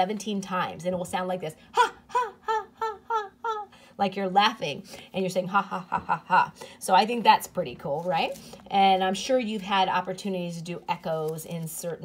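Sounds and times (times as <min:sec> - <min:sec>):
woman calling ha: 0:01.7 - 0:03.8.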